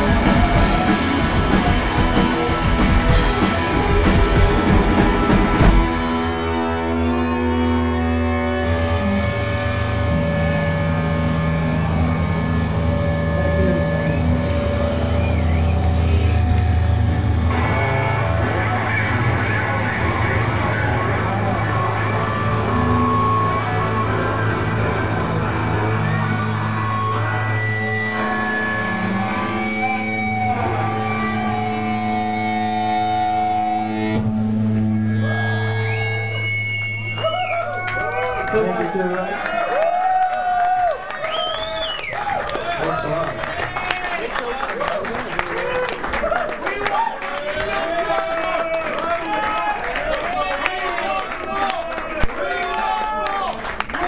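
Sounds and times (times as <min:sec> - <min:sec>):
drums and guitars: 0:00.0 - 0:38.4
sustained electric guitar drone: 0:00.0 - 0:38.6.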